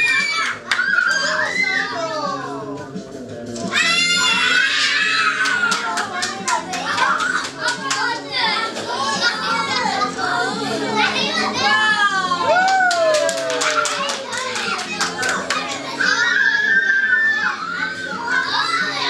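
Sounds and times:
children shouting and laughing: 0.0 - 2.8, 3.5 - 19.0
clapping: 0.6 - 0.9, 5.4 - 8.9, 12.5 - 15.8.

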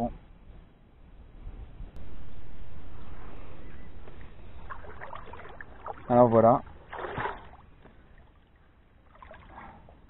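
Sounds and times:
wind rumble on microphone: 0.0 - 7.8
water lapping at bank: 4.1 - 10.0.

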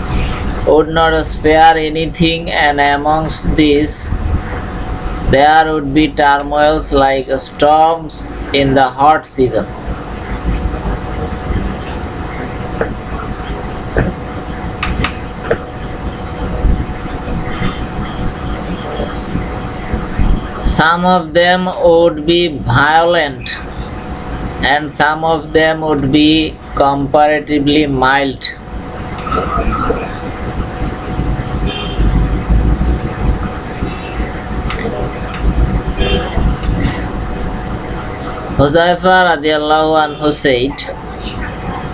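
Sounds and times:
faint steady hum: 0.0 - 41.9
low rumbling background noise: 0.0 - 41.9.

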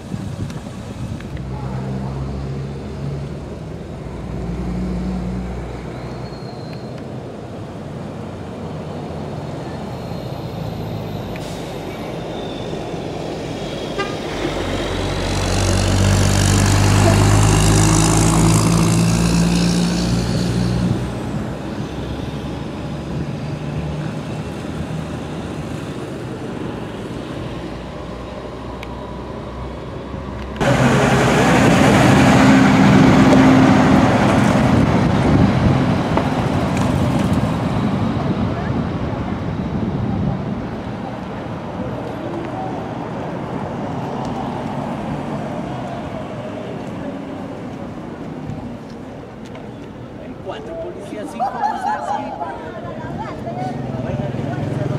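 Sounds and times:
highway traffic: 0.0 - 54.9
rush of vehicle noise: 0.0 - 54.9
heavy vehicle engine passing: 7.8 - 51.2, 51.8 - 54.9.

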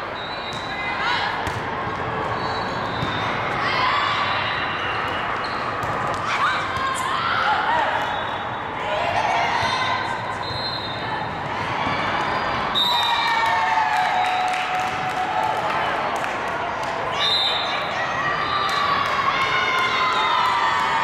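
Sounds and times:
volleyball hits and bounces: 1.3 - 3.4, 5.7 - 7.0.

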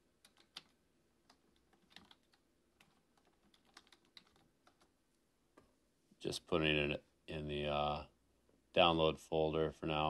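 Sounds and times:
keyboard typing clicks: 0.2 - 0.7, 1.3 - 4.9.

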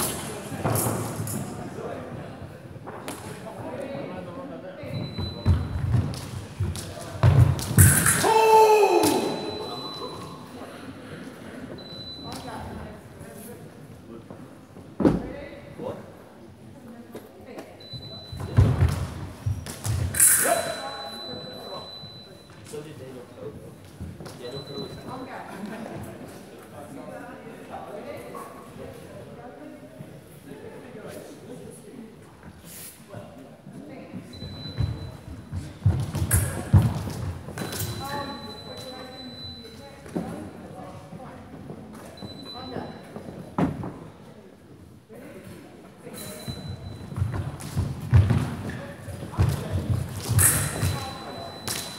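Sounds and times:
fencers' footwork thudding: 5.4 - 8.4, 34.8 - 38.0, 47.1 - 51.9
short shout: 8.0 - 9.5
sharp high blade clash: 20.2 - 21.0.

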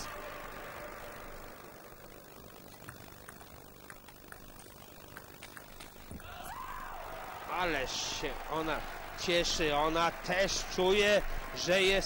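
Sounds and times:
table tennis ball ticks: 2.4 - 6.1.

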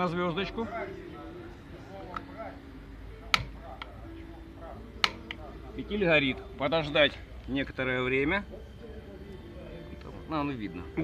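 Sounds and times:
piezo igniter clicking: 3.2 - 4.0, 5.0 - 5.4.

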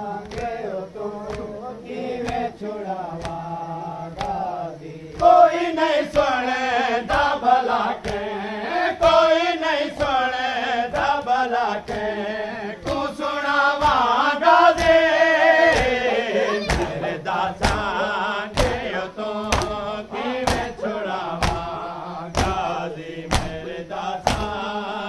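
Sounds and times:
men chanting in unison: 0.0 - 25.0
hands slapping chests: 0.2 - 1.6, 2.2 - 3.5, 4.2 - 7.4, 8.0 - 8.4, 9.0 - 24.7.

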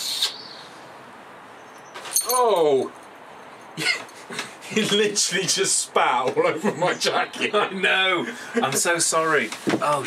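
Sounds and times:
short hiss: 0.0 - 0.4.

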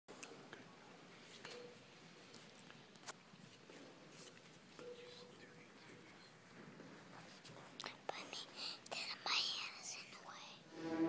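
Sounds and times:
person whispering: 7.8 - 10.7.

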